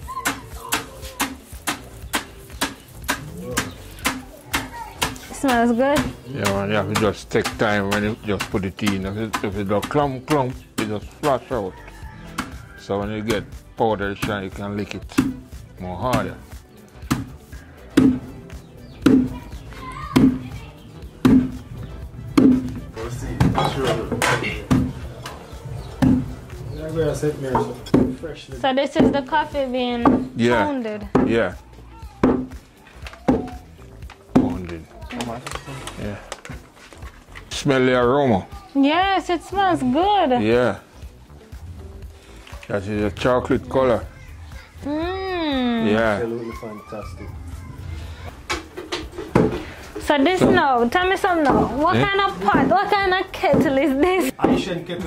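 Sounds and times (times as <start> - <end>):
wooden pestle pounding in mortar: 0.2 - 11.3, 15.1 - 15.4, 17.9 - 18.3, 19.0 - 19.4, 21.2 - 21.6, 22.3 - 22.8, 23.4 - 25.0, 26.0 - 26.4, 27.5 - 28.2, 30.0 - 30.4, 31.1 - 31.5.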